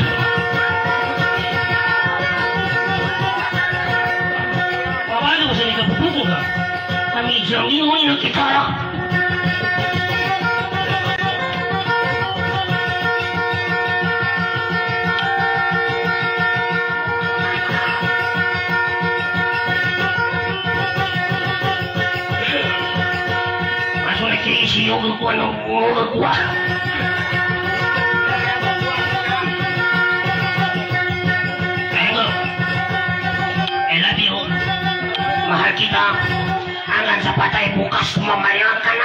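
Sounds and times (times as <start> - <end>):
man's voice: 4.5 - 8.9, 22.0 - 23.2, 24.0 - 27.1, 31.8 - 32.6, 33.6 - 39.0.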